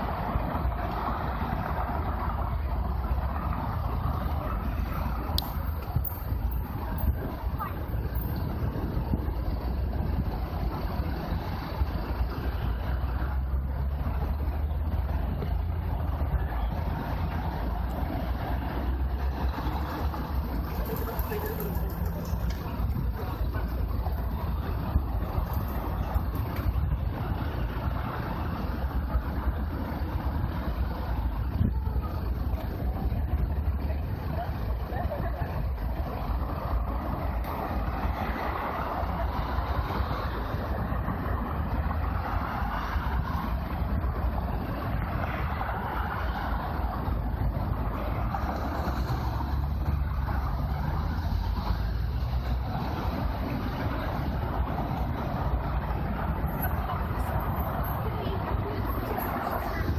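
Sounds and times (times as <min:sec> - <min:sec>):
road traffic: 0:00.0 - 0:59.9.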